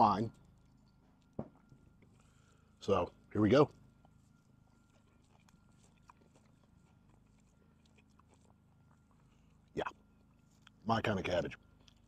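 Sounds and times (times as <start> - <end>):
chewing with mouth clicks: 0.2 - 10.9, 11.5 - 12.0.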